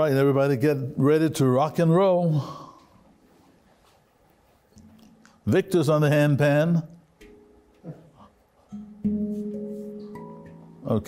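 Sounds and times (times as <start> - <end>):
steel handpan notes: 8.7 - 11.0.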